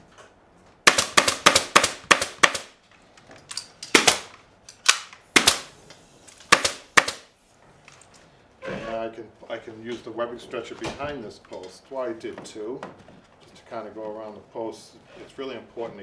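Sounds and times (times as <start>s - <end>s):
pneumatic staple gun firing: 3.9s - 7.3s.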